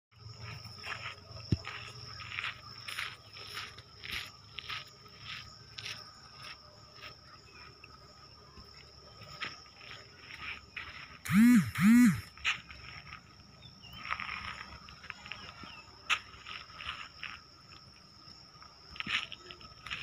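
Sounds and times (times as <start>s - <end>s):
high insect drone: 0.2s - 20.0s
footsteps walking: 0.4s - 7.2s.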